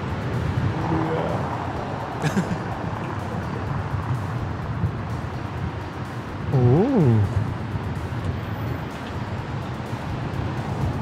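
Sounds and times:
background music: 0.0s - 11.0s
road traffic: 0.0s - 11.0s.

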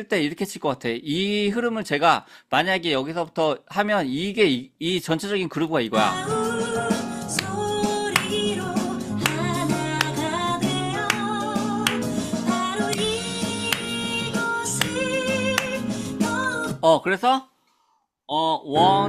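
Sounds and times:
pop ballad with woman singing: 6.0s - 16.8s.

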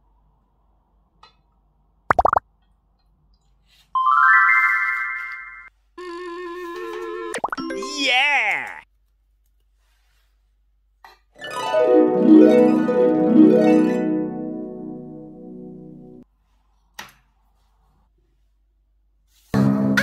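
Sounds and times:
cartoon plop: 2.1s - 2.4s.

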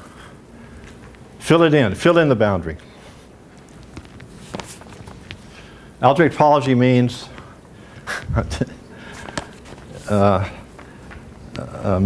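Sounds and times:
soft footsteps: 2.8s - 5.8s, 7.2s - 11.7s.

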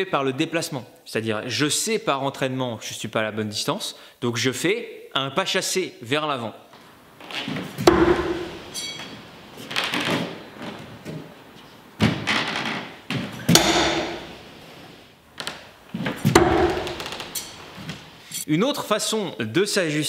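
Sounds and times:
footsteps on wooden floor: 6.7s - 18.3s
knives thudding into wooden target: 7.7s - 9.2s, 13.4s - 14.4s, 16.0s - 18.1s.

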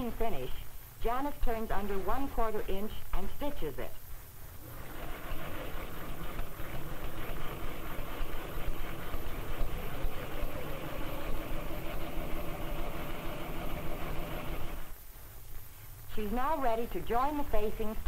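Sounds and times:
sewing machine running: 4.6s - 14.9s.

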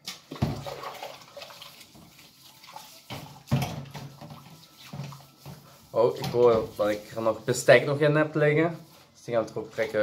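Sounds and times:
water sloshing in a sink: 0.0s - 7.8s
pots and pans washed: 0.0s - 8.2s, 8.9s - 10.0s.

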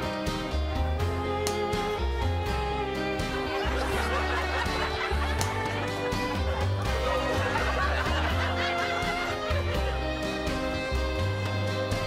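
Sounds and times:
comedy music: 0.0s - 12.0s
laugh track: 3.1s - 11.3s.

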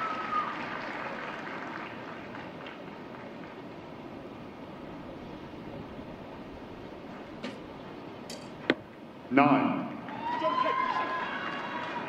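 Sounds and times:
spectator applause: 0.0s - 3.7s, 10.0s - 12.0s.

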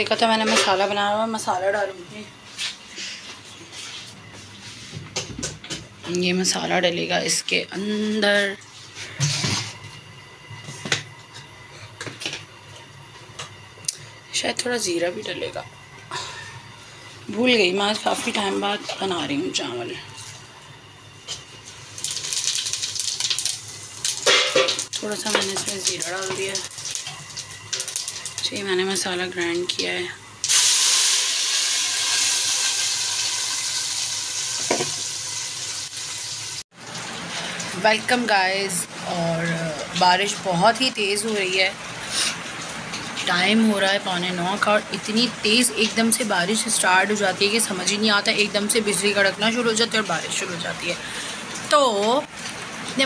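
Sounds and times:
paste sizzling in hot oil: 21.8s - 28.7s, 30.4s - 36.6s.

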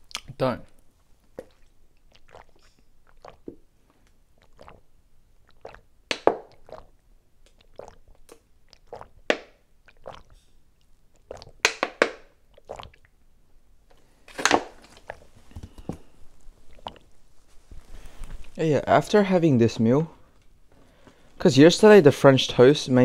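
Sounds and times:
person gulping water: 1.3s - 13.2s, 13.9s - 17.2s.

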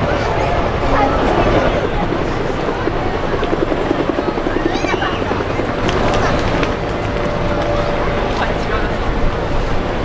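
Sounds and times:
helicopter engine rush: 0.0s - 10.0s
helicopter rotors thudding: 0.0s - 10.0s.

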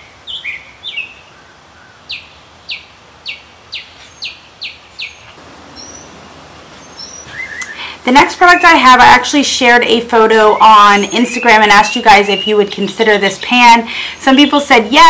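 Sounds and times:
bird chirping: 0.0s - 8.8s, 10.2s - 14.7s.

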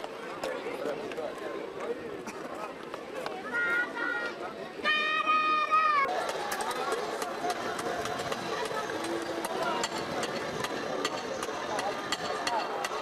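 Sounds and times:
murmur of voices: 0.0s - 13.0s
people talking: 0.0s - 13.0s.

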